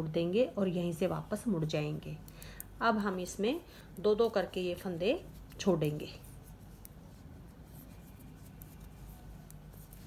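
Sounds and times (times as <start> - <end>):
knitting needles clicking and scratching: 5.2 - 10.0.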